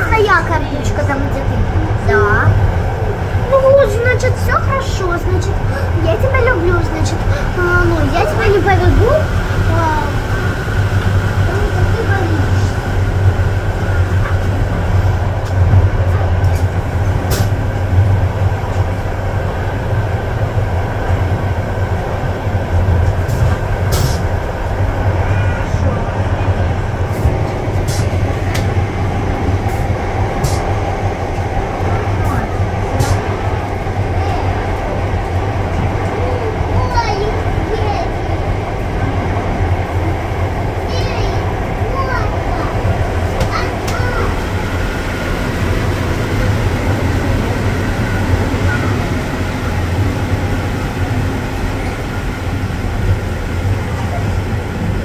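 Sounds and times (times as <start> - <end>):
train rumbling on track: 0.0 - 55.0.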